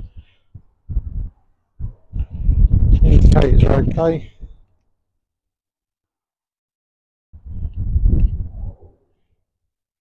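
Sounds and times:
wind buffeting microphone: 0:00.0 - 0:04.7, 0:07.4 - 0:09.3.

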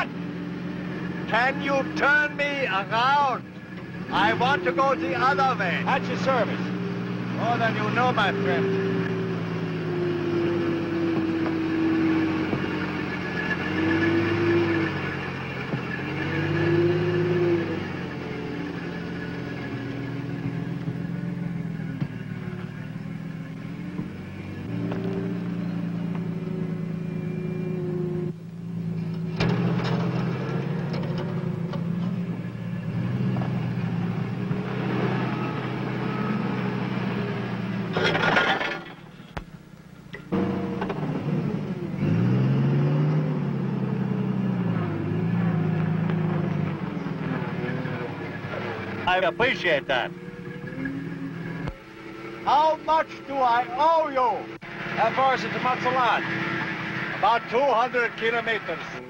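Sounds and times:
forklift engine under load: 0:00.0 - 0:59.0.

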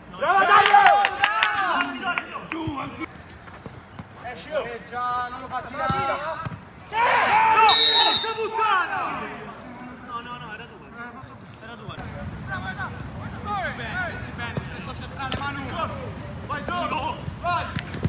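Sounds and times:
referee's whistle: 0:07.6 - 0:08.6.

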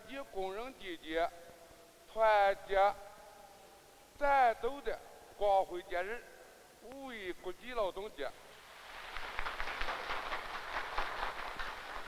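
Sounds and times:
man giving a speech: 0:00.0 - 0:03.6, 0:04.2 - 0:08.5.

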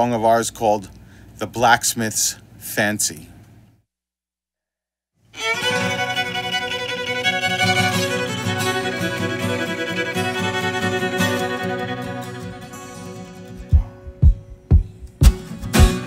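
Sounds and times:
fiddle playing fast tune: 0:05.4 - 0:14.3.

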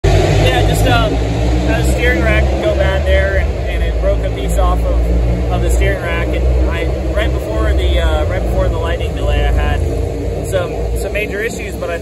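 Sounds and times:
steady low rumble: 0:00.0 - 0:12.0
man speaking into a microphone: 0:00.3 - 0:12.0.

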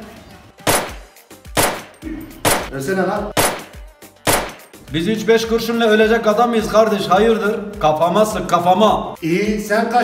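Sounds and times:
gunshots: 0:00.7 - 0:02.7, 0:03.3 - 0:04.7.

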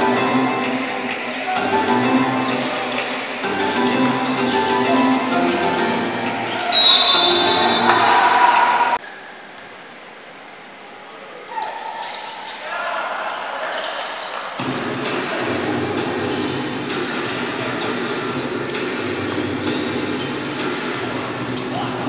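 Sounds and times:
voices echoing in arena: 0:00.0 - 0:22.0.

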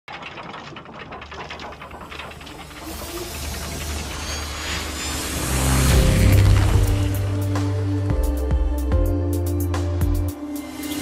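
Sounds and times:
clockwork gears ticking: 0:00.1 - 0:07.4
low hum: 0:01.2 - 0:11.0.

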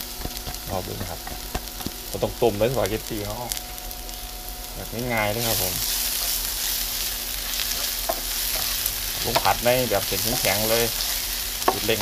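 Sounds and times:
garlic sizzling in hot oil: 0:00.0 - 0:12.0.

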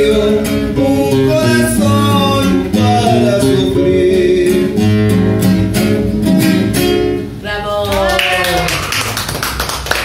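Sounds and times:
acoustic guitar chord: 0:00.0 - 0:07.4
small group clapping: 0:07.8 - 0:10.0.

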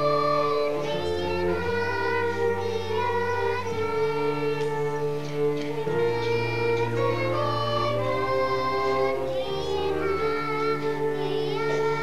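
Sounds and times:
children singing held notes: 0:00.0 - 0:12.0
low sustained accompaniment: 0:00.0 - 0:12.0.

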